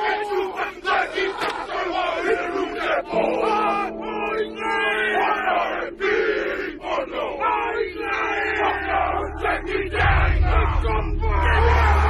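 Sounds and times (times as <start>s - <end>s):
men shouting a war chant: 0.0s - 12.0s.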